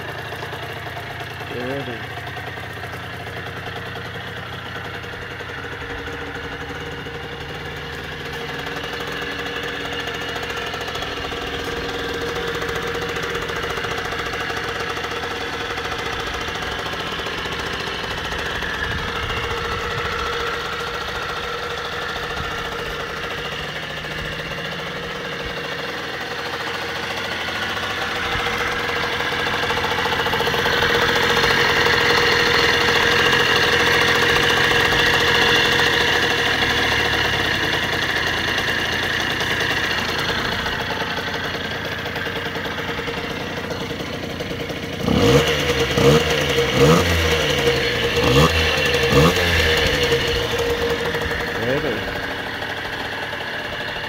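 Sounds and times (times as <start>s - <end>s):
small engine idling: 0.0s - 54.0s.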